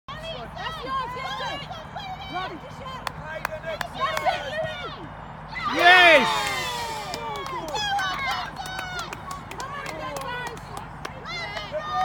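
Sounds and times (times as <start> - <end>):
people shouting and calling out: 3.7 - 9.1.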